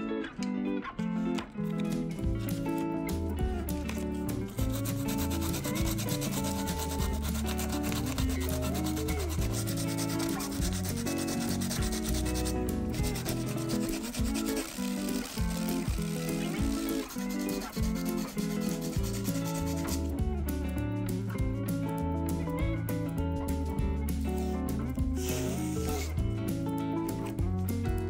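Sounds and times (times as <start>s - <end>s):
guitar music: 0.0s - 28.0s
sandpaper rubbing on plastic: 4.5s - 20.1s, 25.2s - 26.2s.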